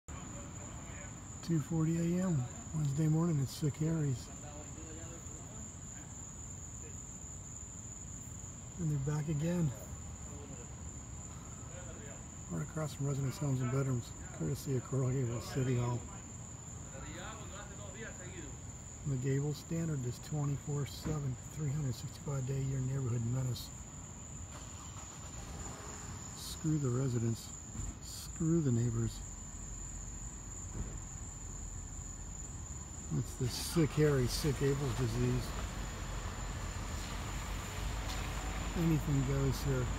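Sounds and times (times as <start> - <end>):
crickets trilling: 0.1 - 39.9.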